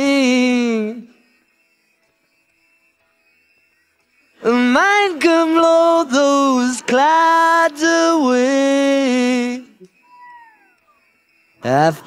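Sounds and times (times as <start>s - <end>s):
man singing: 0.0s - 1.2s, 4.4s - 9.9s
faint steady tones: 0.0s - 12.0s.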